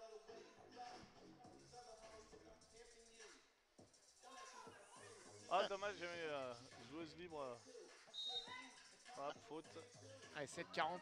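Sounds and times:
referee's whistle blast: 0:08.2 - 0:08.6.

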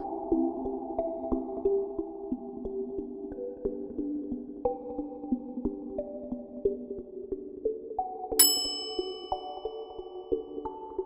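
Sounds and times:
plucked background music: 0:00.0 - 0:11.0
bright chime: 0:08.4 - 0:10.1.

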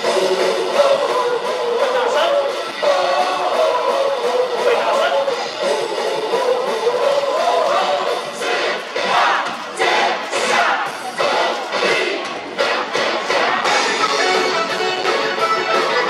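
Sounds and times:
cheer song over loudspeakers: 0:00.0 - 0:16.0
crowd singing and chanting: 0:00.0 - 0:16.0.

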